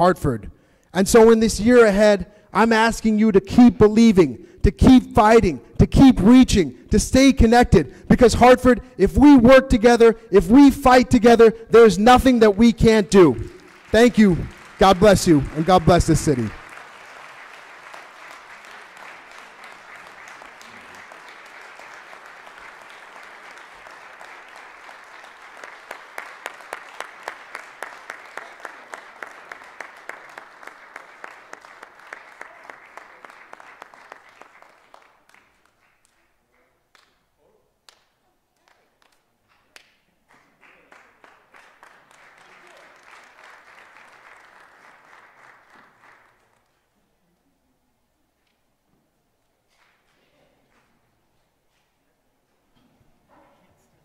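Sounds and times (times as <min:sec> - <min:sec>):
room of people applauding: 0:03.4 - 0:47.1, 0:49.7 - 0:51.1.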